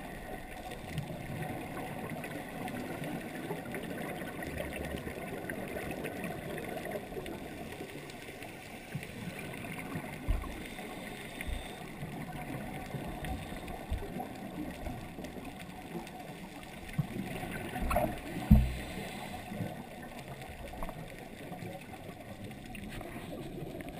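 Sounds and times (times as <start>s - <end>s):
faint gurgle: 0.0s - 23.9s
muffled underwater noise: 0.0s - 23.9s
low knocks: 18.4s - 18.9s.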